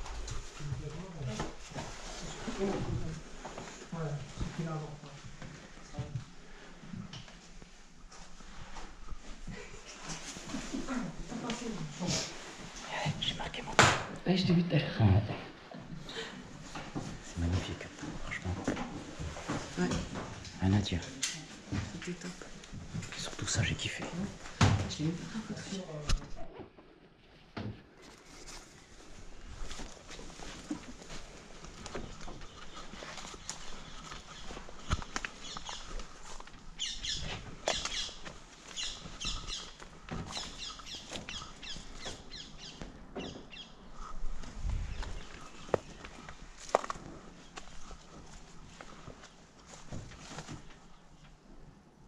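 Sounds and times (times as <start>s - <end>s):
clicks and knocks of people moving: 0.0s - 51.5s
birds chirping: 32.0s - 46.4s.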